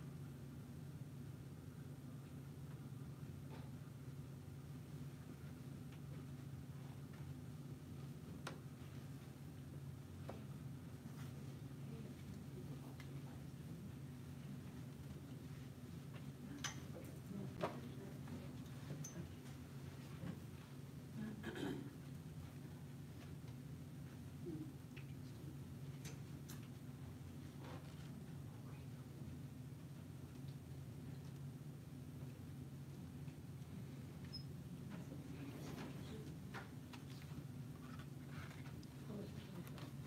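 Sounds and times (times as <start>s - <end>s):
low room hum: 0.0s - 40.0s.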